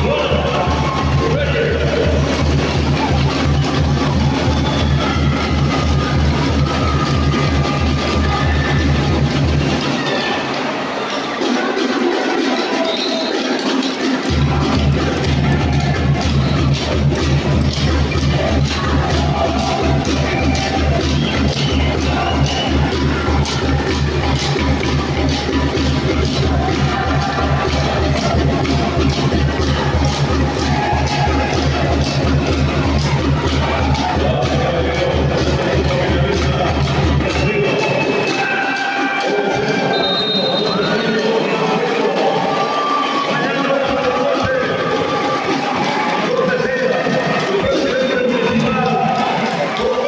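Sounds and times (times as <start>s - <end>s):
heavy bass: 0.0s - 10.0s, 14.3s - 38.7s
music with steady beat: 0.0s - 50.0s.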